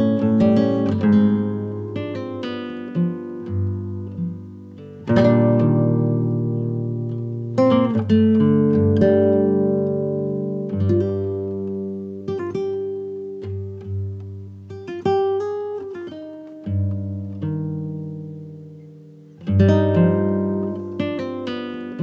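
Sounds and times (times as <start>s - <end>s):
slow guitar music: 0.0s - 22.0s.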